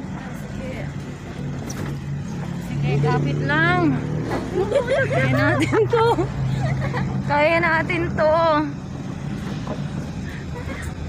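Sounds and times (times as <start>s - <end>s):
rumbling road noise: 0.0s - 11.0s
truck engine humming: 0.0s - 11.0s.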